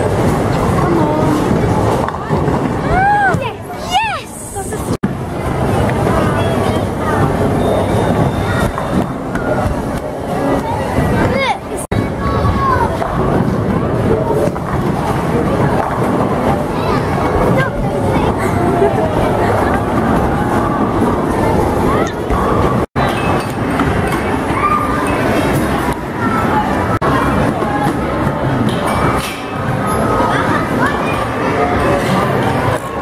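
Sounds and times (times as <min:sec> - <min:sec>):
bowling balls rolling on wooden lanes: 0:00.0 - 0:03.7
bowling balls rolling on lanes: 0:00.0 - 0:11.4, 0:12.7 - 0:33.0
faint voices: 0:00.0 - 0:33.0
people chattering: 0:00.0 - 0:33.0.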